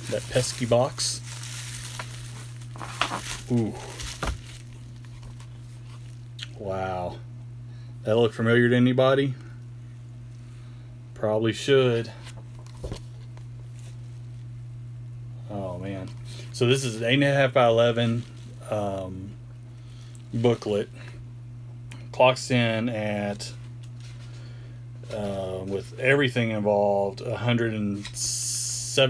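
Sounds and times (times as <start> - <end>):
packaging rustling: 0.0 - 6.4, 18.0 - 18.6
low room hum: 0.0 - 29.0.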